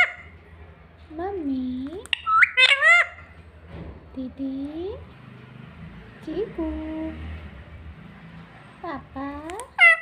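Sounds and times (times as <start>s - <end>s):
parakeet shrill calls: 0.0s - 0.3s, 2.1s - 3.4s, 9.6s - 10.0s.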